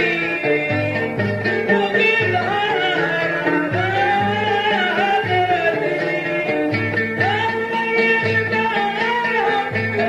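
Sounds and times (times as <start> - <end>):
instrumental ensemble with bass line: 0.0 - 10.0
woman singing: 1.3 - 10.0.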